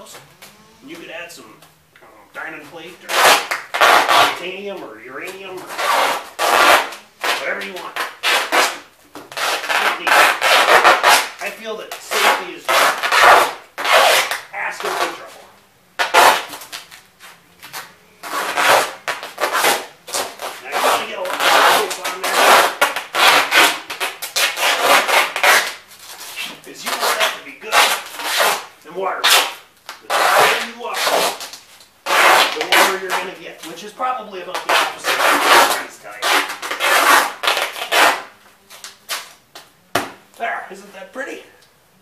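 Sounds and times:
duct tape ripping off roll: 0:02.9 - 0:04.6, 0:05.2 - 0:15.4, 0:16.0 - 0:40.2.

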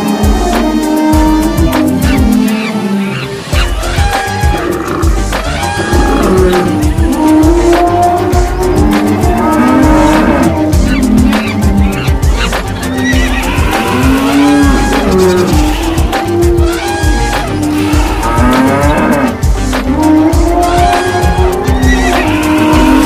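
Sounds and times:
music: 0:00.0 - 0:23.0
animal calls: 0:00.2 - 0:23.0.

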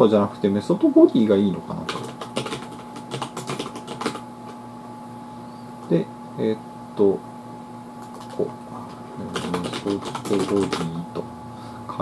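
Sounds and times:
computer keyboard typing: 0:01.7 - 0:04.6, 0:08.0 - 0:08.5, 0:09.2 - 0:11.0.

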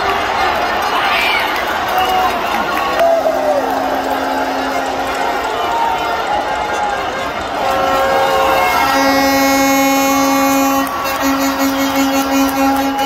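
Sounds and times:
stadium crowd noise: 0:00.0 - 0:13.0
fan's horn: 0:03.4 - 0:07.4, 0:08.4 - 0:13.0.

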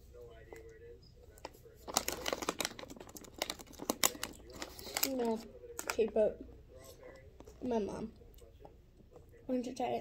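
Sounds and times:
plastic bag crinkling: 0:01.8 - 0:06.1.

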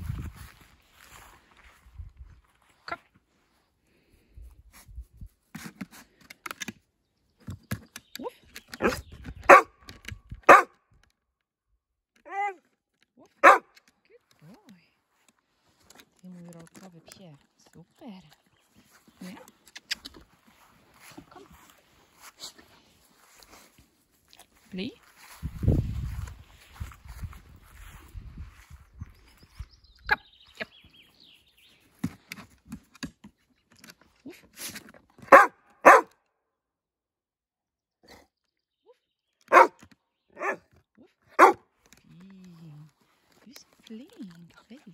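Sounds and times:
dog barking: 0:08.8 - 0:09.8, 0:10.5 - 0:10.7, 0:13.4 - 0:13.7, 0:35.3 - 0:36.1, 0:39.5 - 0:39.8, 0:40.4 - 0:40.6, 0:41.4 - 0:41.6.

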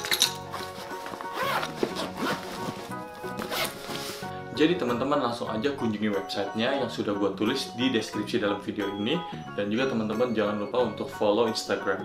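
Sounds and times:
background music: 0:00.0 - 0:12.0
zipper rasping on fabric bag: 0:00.6 - 0:04.3.

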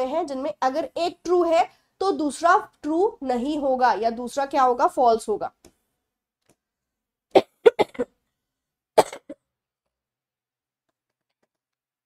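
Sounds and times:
woman coughing: 0:07.4 - 0:08.2, 0:09.0 - 0:09.5.

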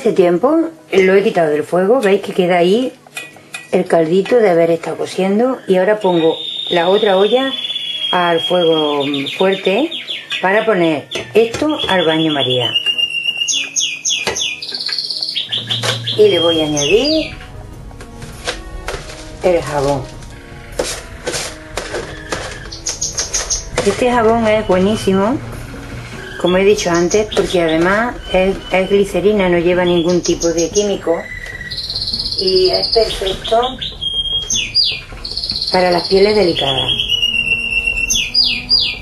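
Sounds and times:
soft background music: 0:00.0 - 0:39.0
songbird whistling: 0:05.5 - 0:17.5, 0:20.3 - 0:25.3, 0:26.0 - 0:39.0
grated soap scraping into metal pot: 0:20.2 - 0:22.8.

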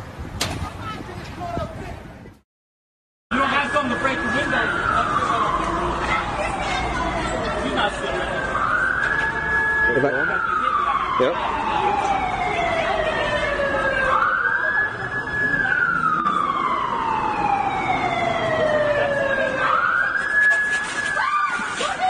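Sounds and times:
voices: 0:03.3 - 0:09.2, 0:09.8 - 0:22.0
siren wailing: 0:03.3 - 0:22.0.

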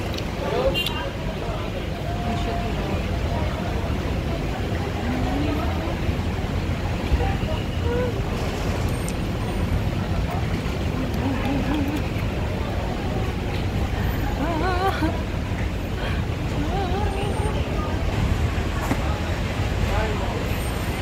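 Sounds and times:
faint voices: 0:00.0 - 0:21.0
traffic rumble: 0:00.0 - 0:21.0.

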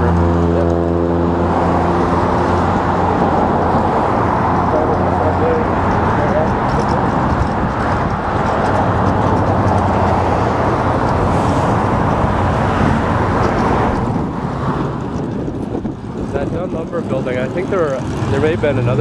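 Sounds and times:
low engine drone: 0:00.0 - 0:19.0
road traffic rushing: 0:00.0 - 0:19.0.

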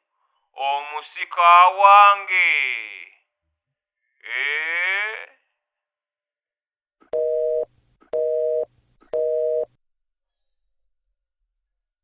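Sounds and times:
telephone busy signal beeping: 0:07.2 - 0:09.7.

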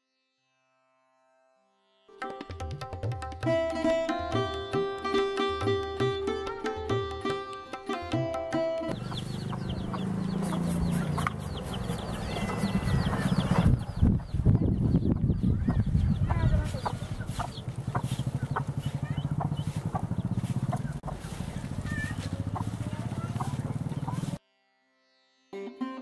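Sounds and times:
birds chirping: 0:07.0 - 0:24.4.

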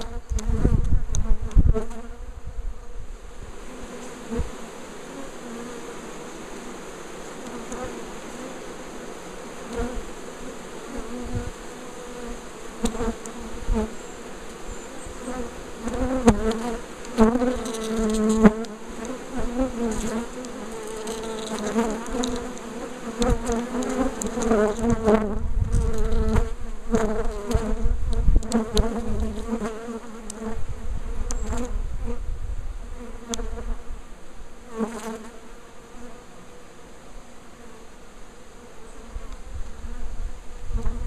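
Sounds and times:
bees buzzing: 0:00.0 - 0:41.0.

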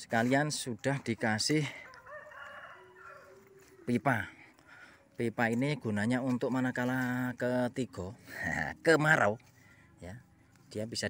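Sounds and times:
rooster crowing: 0:01.8 - 0:03.8.

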